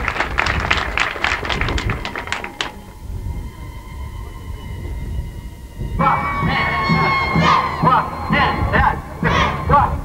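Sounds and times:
faint steady hum: 0.0s - 10.0s
low background hiss: 0.0s - 10.0s
voices chanting and shouting: 5.8s - 10.0s.

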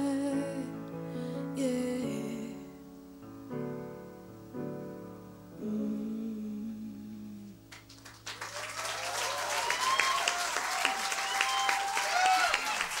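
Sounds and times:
piano chord: 0.0s - 8.0s
audience applause: 7.7s - 13.0s
cheers and whistles: 8.4s - 13.0s.

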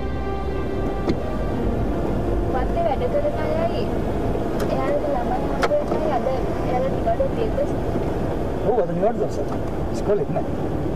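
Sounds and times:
engine and road noise: 0.0s - 10.9s.

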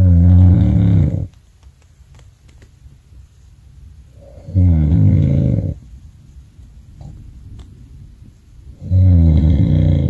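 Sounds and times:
man snoring: 0.0s - 1.3s, 4.2s - 5.8s, 8.8s - 10.0s.

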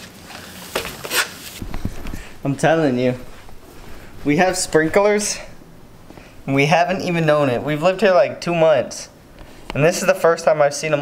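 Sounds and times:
low thumps: 1.6s - 9.8s.

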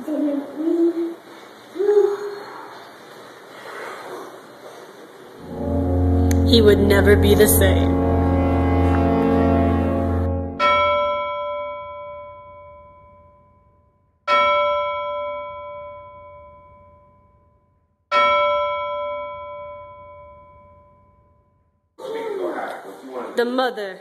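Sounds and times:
deep droning musical tone: 5.4s - 10.8s
large bell tolling: 5.4s - 13.3s.

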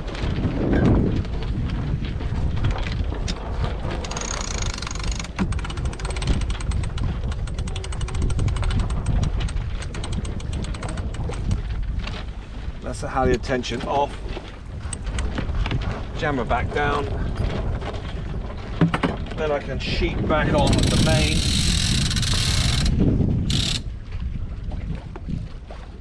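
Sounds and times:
wind noise on microphone: 0.0s - 26.0s
winch pawls clicking: 3.3s - 11.7s, 14.3s - 15.8s, 20.6s - 23.8s.

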